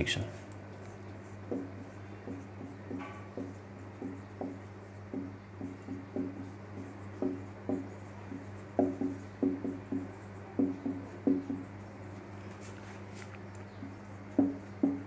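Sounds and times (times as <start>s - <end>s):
steady low hum: 0.0s - 15.0s
marker writing on whiteboard: 0.2s - 15.0s.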